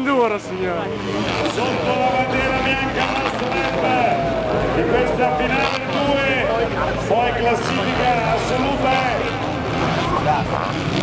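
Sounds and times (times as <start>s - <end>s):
announcer speaking over loudspeaker: 0.0s - 10.8s
motorcycle engines revving: 0.0s - 11.0s.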